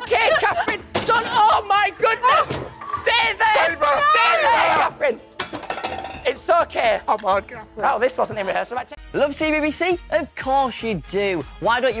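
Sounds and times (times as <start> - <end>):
people laughing: 0.0 - 0.9
people shouting excitedly: 0.0 - 5.2
props clinking and knocking: 0.6 - 1.6, 5.4 - 6.4.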